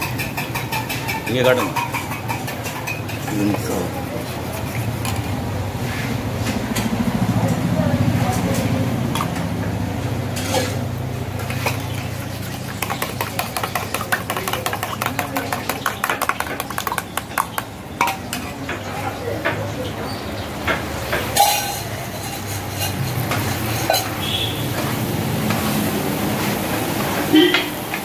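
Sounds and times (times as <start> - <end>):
spoon stirring liquid: 0.0 - 5.3, 11.4 - 18.9, 21.4 - 24.9
spoon clinking against steel cup: 12.8 - 18.3, 21.4 - 24.3.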